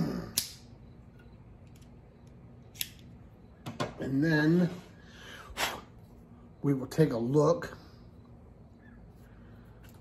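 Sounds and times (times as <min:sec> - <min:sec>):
cigar cutter blade snap: 0:00.3 - 0:00.6, 0:02.7 - 0:03.0
cigar cutter clicks: 0:00.3 - 0:00.6, 0:02.7 - 0:03.0.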